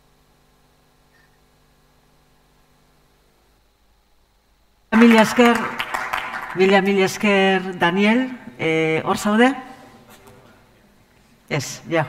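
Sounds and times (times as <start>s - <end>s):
faint steady hum: 0.0s - 12.0s
woman speaking: 5.0s - 5.8s, 6.4s - 9.8s.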